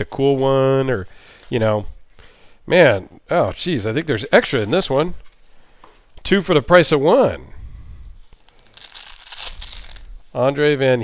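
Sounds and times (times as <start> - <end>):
velcro closure ripping open: 8.4 - 10.2.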